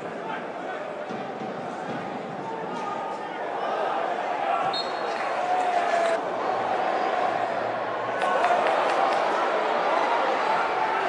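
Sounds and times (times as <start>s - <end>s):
murmur of fans: 0.0s - 11.0s.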